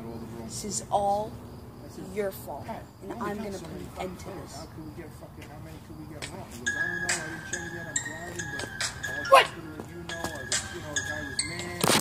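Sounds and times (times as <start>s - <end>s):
background music with held tone: 6.1s - 12.0s
person shouting: 9.2s - 9.6s.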